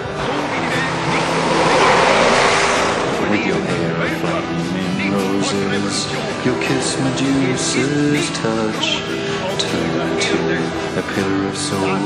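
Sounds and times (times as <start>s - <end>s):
snowplow truck passing: 0.0s - 7.0s.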